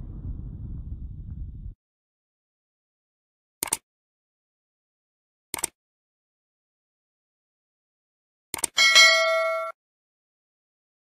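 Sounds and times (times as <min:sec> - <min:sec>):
quick clicks: 0:03.6 - 0:03.8, 0:05.5 - 0:05.8, 0:08.5 - 0:08.8
notification bell ding: 0:08.8 - 0:09.8.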